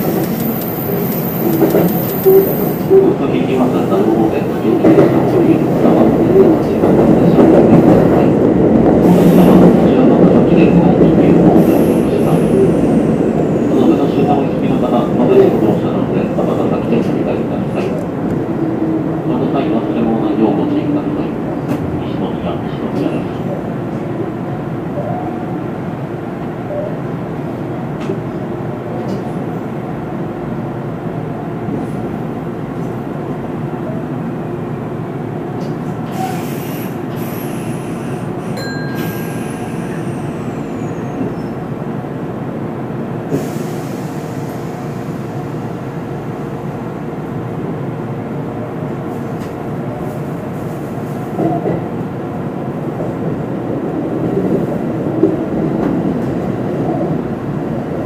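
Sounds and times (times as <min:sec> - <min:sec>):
electric train running on rails: 0:00.0 - 0:58.0.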